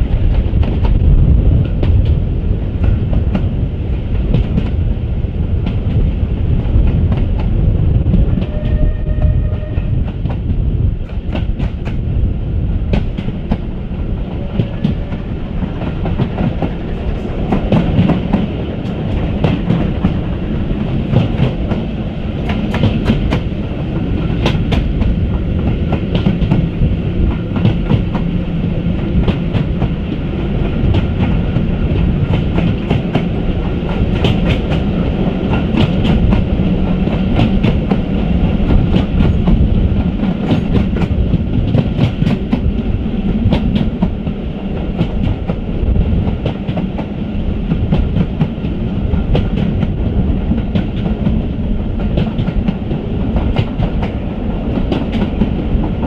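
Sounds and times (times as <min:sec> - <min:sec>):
train rolling rumble: 0:00.0 - 0:56.0.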